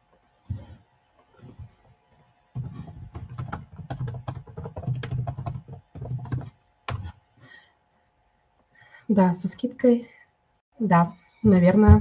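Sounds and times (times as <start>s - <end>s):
typing on computer keyboard: 2.6s - 7.1s.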